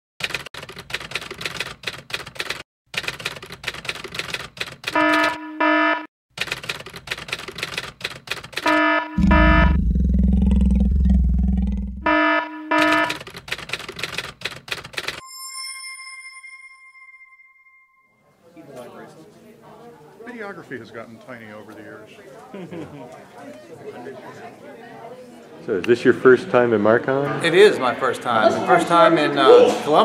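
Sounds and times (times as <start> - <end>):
typewriter keys clacking: 0.2 - 5.3, 6.4 - 8.7, 13.1 - 15.2
short buzzer beeps: 5.0 - 6.1, 8.7 - 9.8, 12.1 - 13.2
loud low rumble: 9.2 - 12.1.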